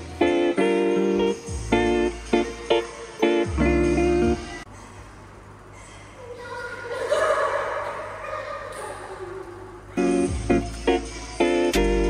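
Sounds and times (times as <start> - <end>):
young women's high voices: 5.8 - 10.1.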